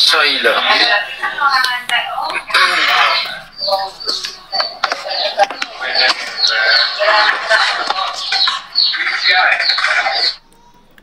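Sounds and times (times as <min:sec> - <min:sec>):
background music: 0:00.0 - 0:11.0
indistinct voices talking: 0:00.0 - 0:11.0.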